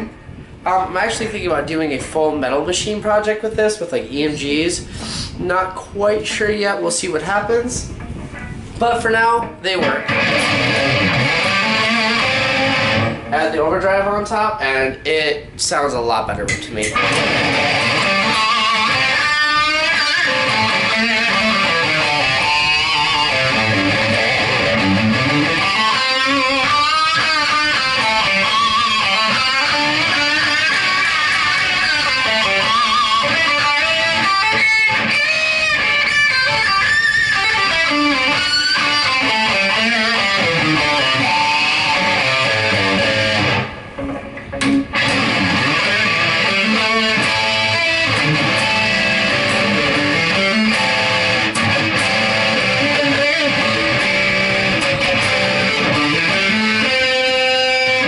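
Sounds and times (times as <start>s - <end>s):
distorted electric guitar: 0.0s - 2.2s, 7.3s - 15.6s, 16.4s - 58.0s.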